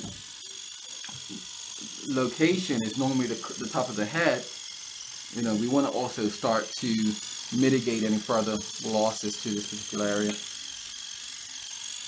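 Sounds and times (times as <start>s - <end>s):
microneedling pen buzzing: 0.0s - 12.0s.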